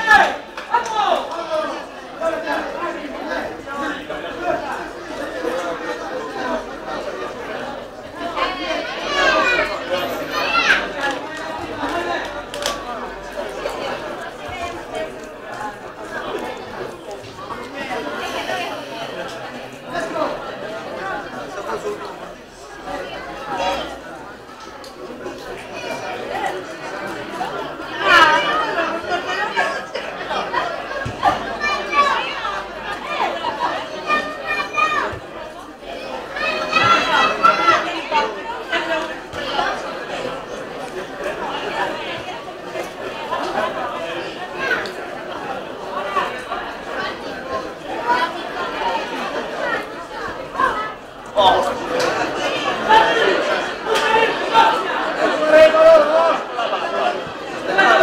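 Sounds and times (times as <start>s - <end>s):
murmur of voices talking: 0.0s - 58.0s
people chattering: 0.0s - 58.0s.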